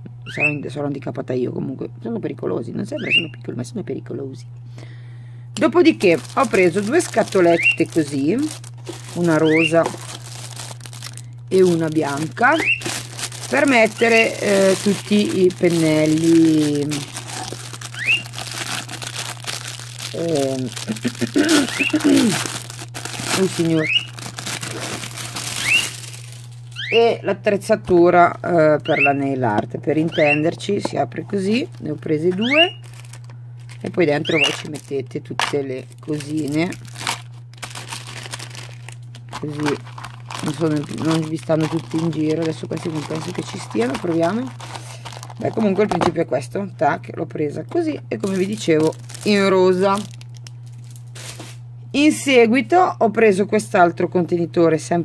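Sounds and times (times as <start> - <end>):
steady low hum: 0.0 - 55.0
plastic bags crinkling: 5.7 - 26.9, 31.4 - 46.1, 48.1 - 51.6
plastic packaging rustling: 5.7 - 26.9, 31.2 - 46.2, 48.2 - 51.6.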